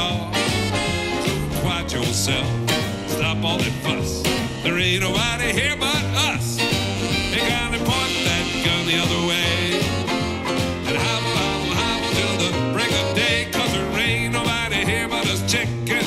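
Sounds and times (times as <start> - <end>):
western swing band playing: 0.0 - 16.0.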